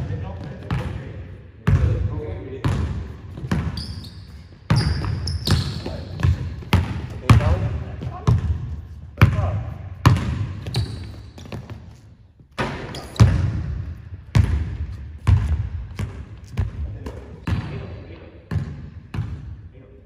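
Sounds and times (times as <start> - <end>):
basketball bouncing on hardwood floor: 2.6 - 3.8, 4.7 - 11.8, 12.6 - 13.7, 14.3 - 17.8, 18.5 - 19.4
sneaker squeaks: 2.7 - 8.6, 10.0 - 13.5.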